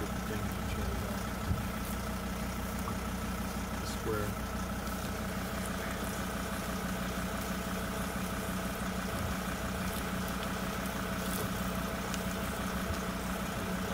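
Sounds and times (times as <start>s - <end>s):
vehicle engine idling: 0.0s - 13.9s.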